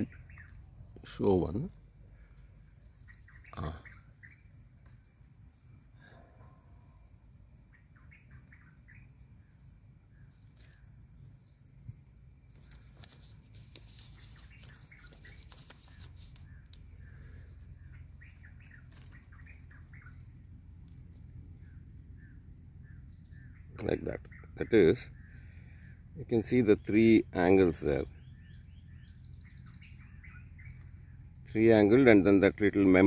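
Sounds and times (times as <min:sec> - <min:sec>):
faint bird chirps: 0:00.0 - 0:33.0
low steady rumble: 0:00.0 - 0:33.0
clicks and rustles: 0:12.5 - 0:16.9, 0:18.6 - 0:19.6.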